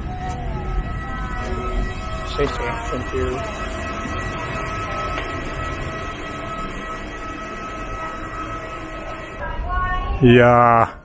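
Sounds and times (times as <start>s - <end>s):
high whine: 0.0s - 11.0s
machinery drone: 0.0s - 11.0s.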